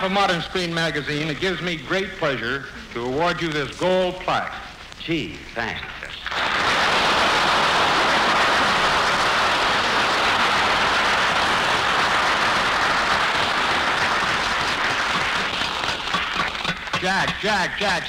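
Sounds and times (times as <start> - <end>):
audience applauding: 6.2 - 18.0.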